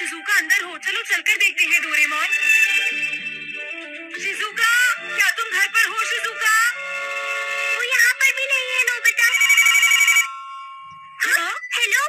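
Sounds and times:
desk telephone ringing: 0:08.8 - 0:11.0.

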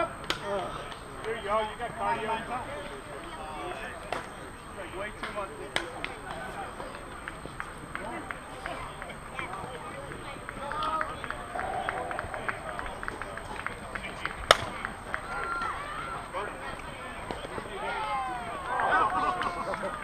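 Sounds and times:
distant players' voices: 0:00.0 - 0:20.0.

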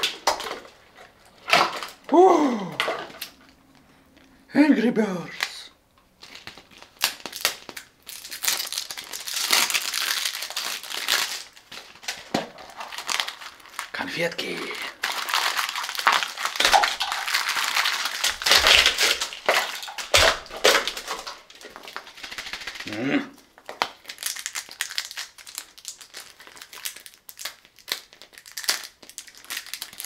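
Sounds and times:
candy wrappers crinkling: 0:05.3 - 0:30.0.

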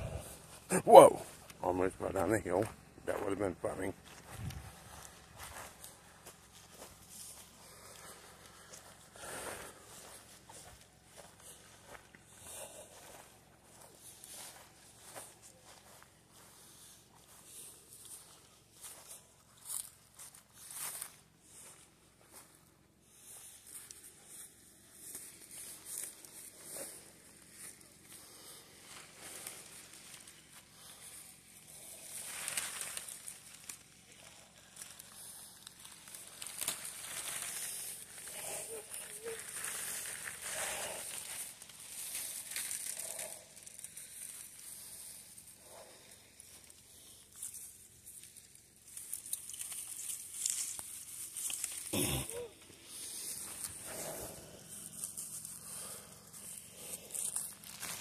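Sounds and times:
footsteps on dry grass: 0:00.0 - 0:58.0
plastic and greenery crinkling: 0:00.0 - 0:58.0.

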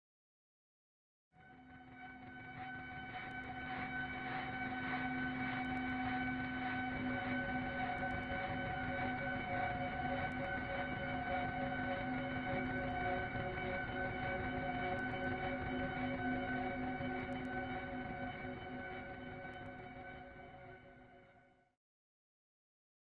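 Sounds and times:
sustained film score drone: 0:02.1 - 0:20.9.

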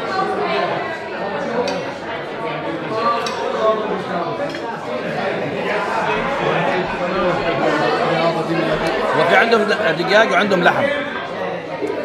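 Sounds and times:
men chattering: 0:01.2 - 0:12.0.

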